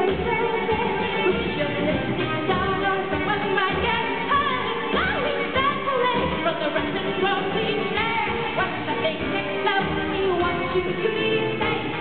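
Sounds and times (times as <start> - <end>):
electric bass: 0.0 - 12.0
woman singing: 0.0 - 12.0.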